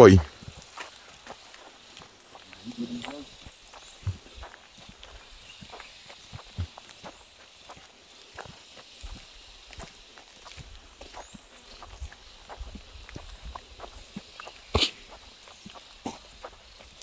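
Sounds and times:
footsteps on forest trail: 0.0s - 17.0s.

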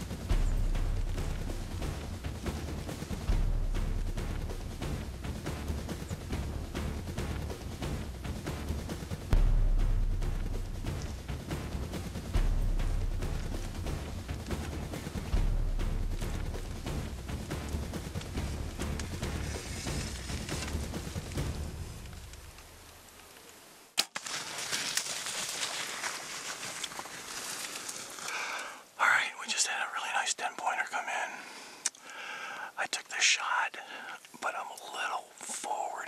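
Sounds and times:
dramatic background music: 0.0s - 22.6s
low drum beat: 0.0s - 22.8s
rustling: 16.2s - 28.8s.

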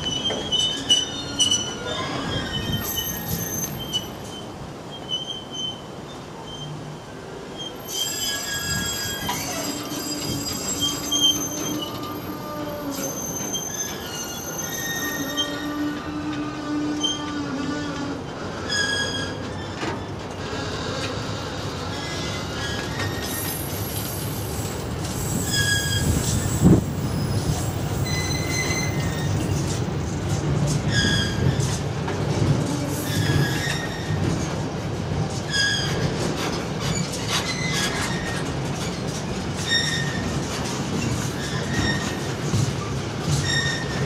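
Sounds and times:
wheel squeals: 0.0s - 6.8s, 7.6s - 16.0s, 18.5s - 29.9s, 30.6s - 31.8s, 33.0s - 34.6s, 35.4s - 44.0s
freight train wheels on rails: 0.0s - 44.0s.

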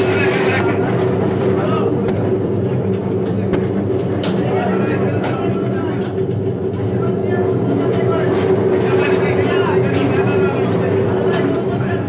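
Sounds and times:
machine hum: 0.0s - 12.0s.

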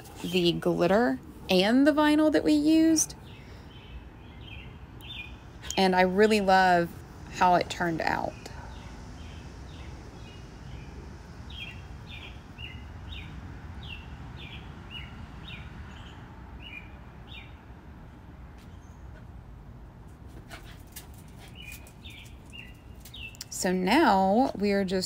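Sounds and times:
low steady background hum: 0.0s - 25.0s.

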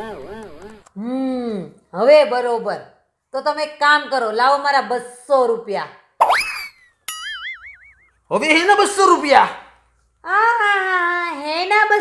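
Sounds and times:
wobbling boing tone: 7.1s - 8.1s.

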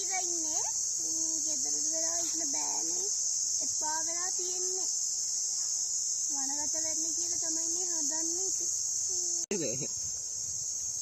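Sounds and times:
woman speaking: 0.0s - 4.9s, 6.3s - 9.4s
chirring insects: 0.0s - 11.0s.

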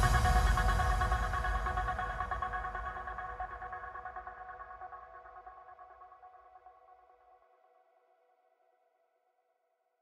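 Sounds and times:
low bass: 0.0s - 3.2s.

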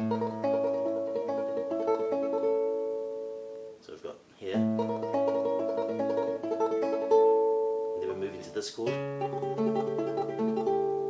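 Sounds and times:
classical guitar tremolo: 0.0s - 3.8s, 4.4s - 11.0s.

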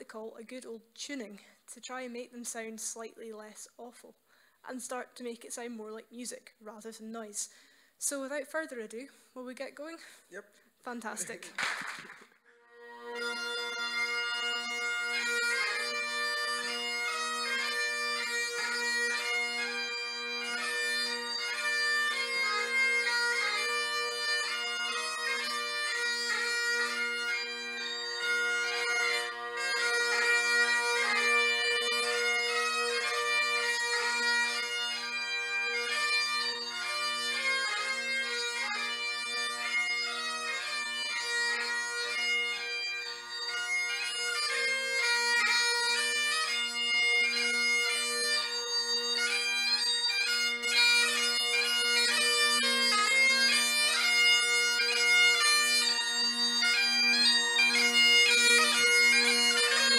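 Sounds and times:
bagpipe playing: 12.4s - 59.9s.

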